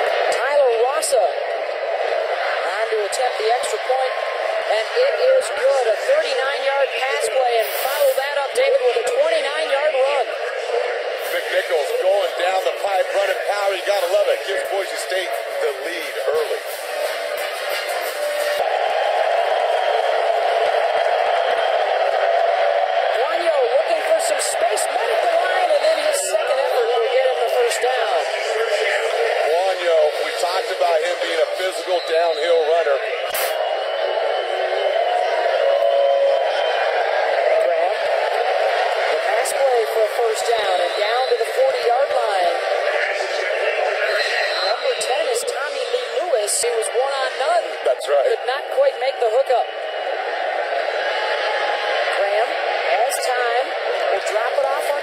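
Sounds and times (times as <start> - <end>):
crowd talking and shouting: 0.0 - 55.0.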